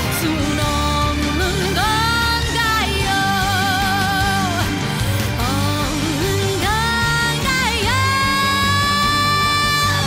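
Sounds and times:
band accompaniment: 0.0s - 10.0s.

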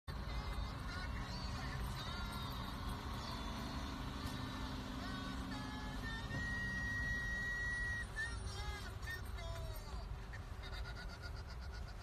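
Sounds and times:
music playing: 0.1s - 10.0s
car cabin rumble: 0.3s - 10.6s.

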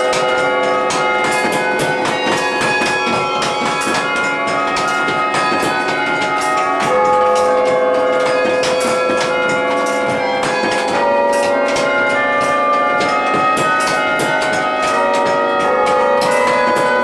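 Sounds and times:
carillon bells playing a tune: 0.0s - 17.0s
deep bell ringing: 0.0s - 17.0s.

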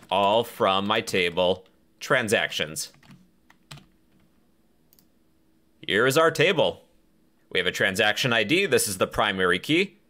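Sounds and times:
man speaking: 0.0s - 3.0s, 5.8s - 6.9s, 7.5s - 10.0s.

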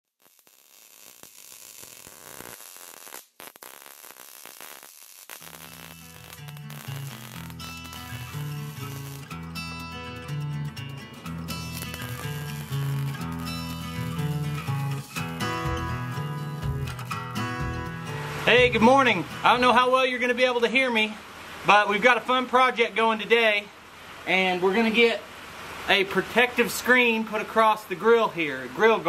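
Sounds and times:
welding arc crackling hiss: 0.0s - 10.4s, 11.0s - 19.6s
background music: 6.2s - 20.0s.

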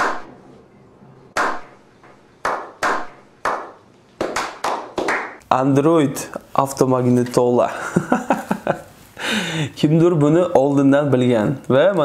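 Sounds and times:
slow hand claps: 1.4s - 1.7s, 2.4s - 5.4s.

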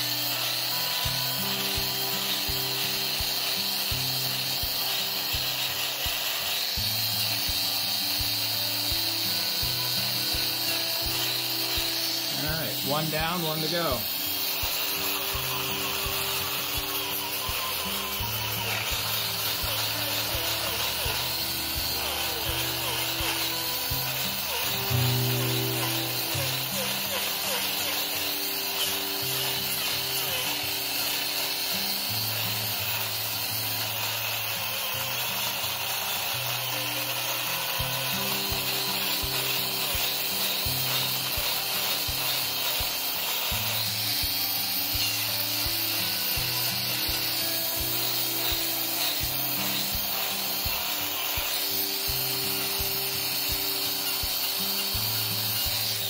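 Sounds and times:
background music: 0.0s - 56.0s
grinder rasping hoof: 0.0s - 56.0s.

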